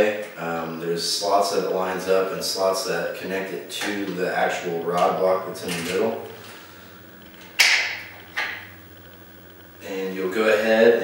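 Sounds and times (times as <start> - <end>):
rubber diaphragm scraping: 2.0 - 11.0.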